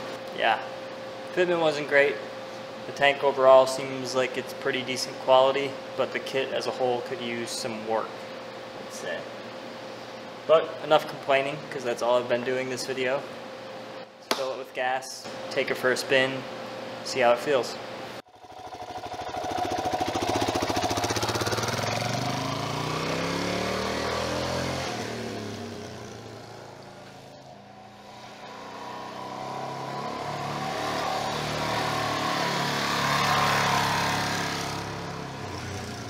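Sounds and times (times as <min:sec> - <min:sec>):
dirt bike engine riding past: 0:18.3 - 0:36.0.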